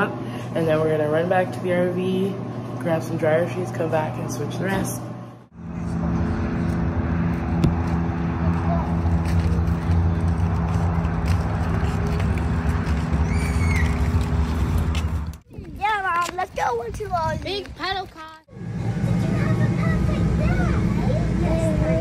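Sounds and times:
low mechanical hum: 0.0 - 15.4, 18.5 - 22.0.

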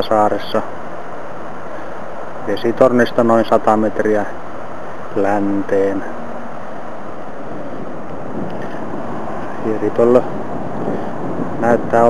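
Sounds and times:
wind blowing on microphone: 0.0 - 12.0.

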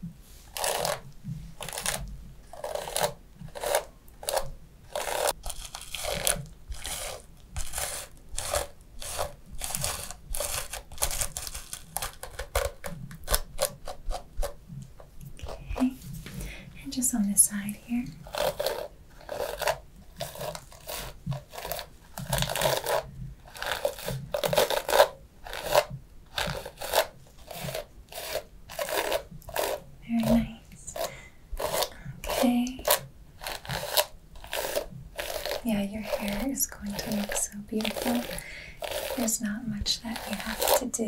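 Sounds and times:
hairbrush strokes through hair: 15.4 - 41.0.

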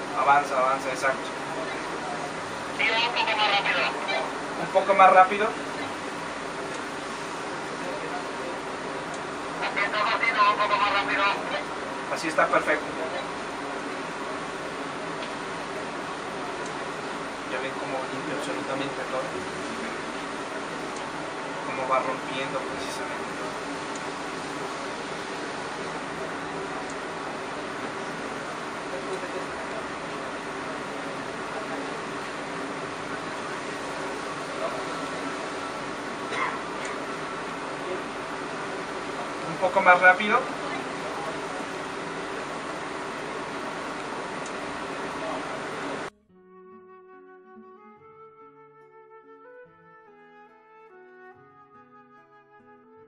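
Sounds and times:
truck machinery humming: 0.0 - 46.1.

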